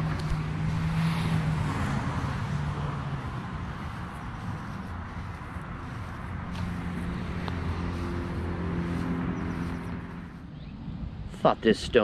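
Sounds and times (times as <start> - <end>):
vehicle engine hum: 0.0 - 11.3
traffic background: 0.0 - 12.0.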